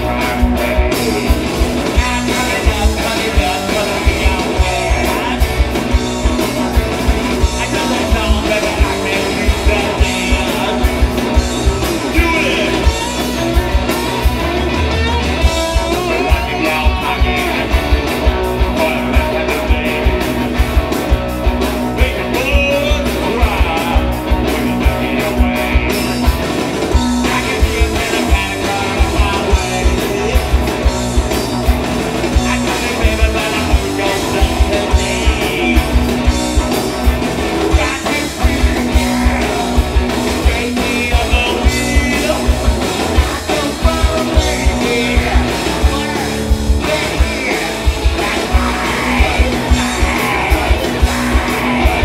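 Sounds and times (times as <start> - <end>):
man singing: 0.0 - 13.9, 14.7 - 20.7, 21.9 - 26.3, 26.9 - 31.1, 32.2 - 36.7, 37.6 - 52.0
bass guitar: 0.0 - 52.0
distorted electric guitars: 0.0 - 52.0
drum kit beat: 0.0 - 52.0.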